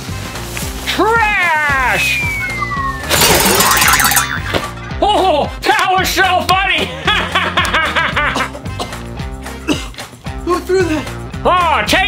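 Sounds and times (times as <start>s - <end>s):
background music: 0.0s - 12.0s
cartoon crash hit: 3.0s - 4.7s.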